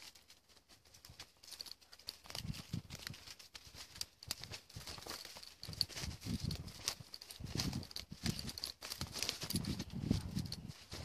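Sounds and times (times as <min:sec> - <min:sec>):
footsteps through dry leaves: 0:00.0 - 0:11.0
twigs snapping: 0:00.0 - 0:11.0.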